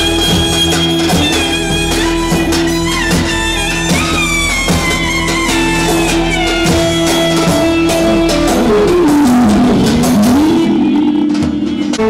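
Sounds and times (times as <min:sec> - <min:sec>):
clarinet melody: 0:00.0 - 0:12.0
percussion beat: 0:00.0 - 0:12.0.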